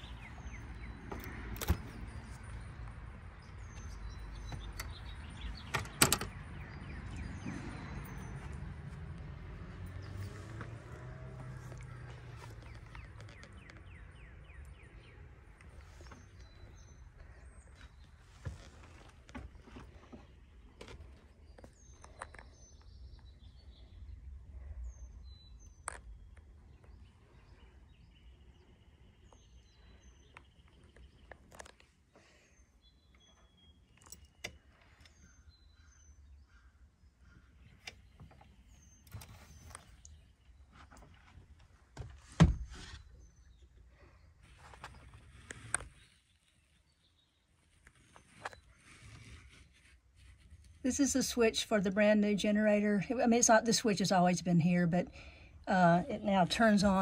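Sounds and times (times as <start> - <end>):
small birds chirping: 0.0 - 41.9, 42.7 - 57.0.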